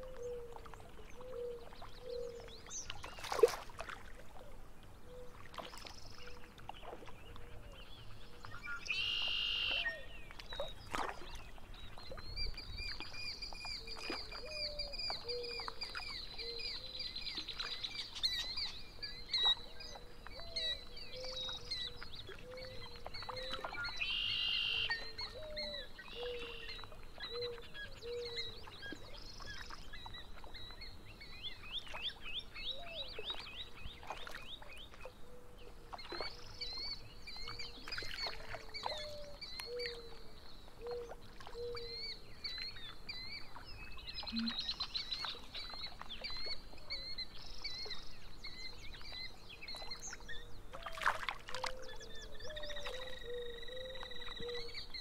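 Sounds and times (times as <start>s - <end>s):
repeated low bird calls: 19.2s - 50.8s.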